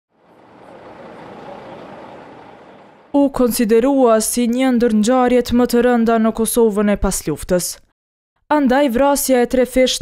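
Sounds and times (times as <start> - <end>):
vehicle: 0.1 - 3.4
outdoor road noise: 0.1 - 4.0.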